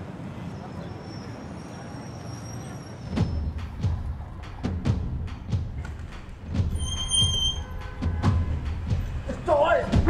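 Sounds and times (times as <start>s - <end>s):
distant city road traffic hum: 0.0s - 10.0s.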